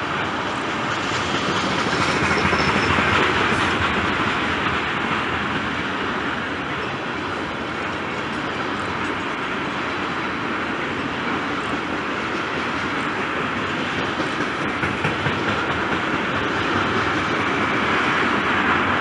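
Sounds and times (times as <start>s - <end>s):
freight train wheels rumbling on rails: 0.0s - 19.0s.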